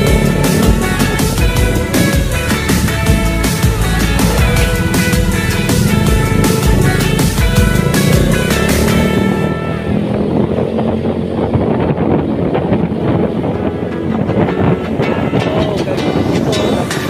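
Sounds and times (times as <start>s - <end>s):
background music: 0.0s - 11.4s, 12.3s - 17.0s
motorcycle engine: 0.0s - 16.8s
wind rumble: 0.0s - 17.0s.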